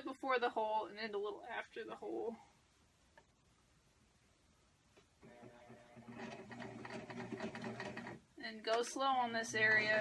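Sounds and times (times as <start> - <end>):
electric sewing machine running: 5.2 - 8.2.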